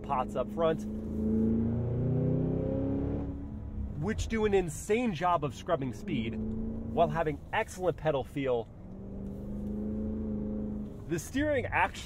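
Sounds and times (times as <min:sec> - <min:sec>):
car engine accelerating: 0:00.0 - 0:11.5.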